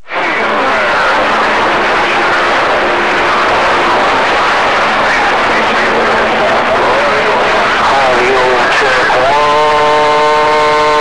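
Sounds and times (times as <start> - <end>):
garbled radio voice: 0.0 - 11.0
radio static hiss: 0.0 - 11.0
steady held tone: 0.0 - 11.0.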